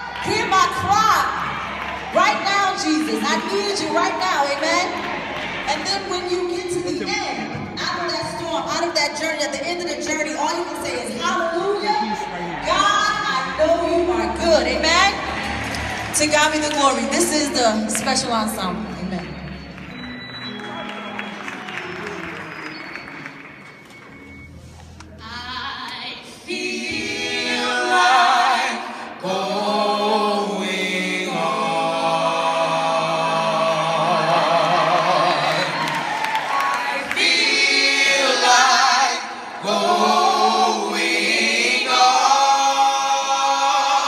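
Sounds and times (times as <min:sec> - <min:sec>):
audience applauding: 0:00.0 - 0:07.5, 0:15.1 - 0:24.5, 0:34.7 - 0:38.4
gospel choir singing in harmony: 0:01.2 - 0:44.0.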